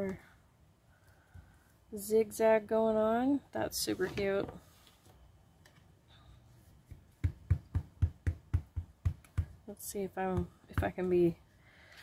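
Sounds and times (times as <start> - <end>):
ink pad knocking on rubber stamp: 6.9 - 9.6.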